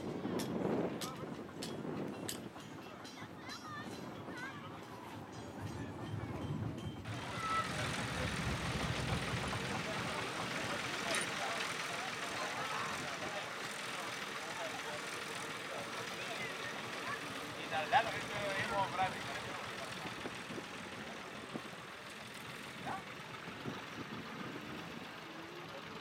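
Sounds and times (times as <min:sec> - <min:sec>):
people talking: 0:00.0 - 0:26.0
tractor engine idling: 0:07.0 - 0:26.0.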